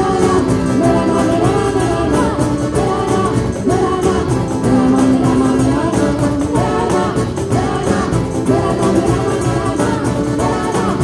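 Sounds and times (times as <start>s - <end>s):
accordion: 0.0s - 11.0s
acoustic guitar: 0.0s - 11.0s
hand percussion beat: 0.0s - 11.0s
woman singing: 0.0s - 11.0s.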